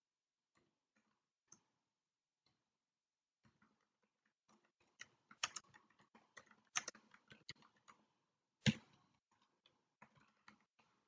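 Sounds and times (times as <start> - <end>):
typing on computer keyboard: 3.4 - 11.0.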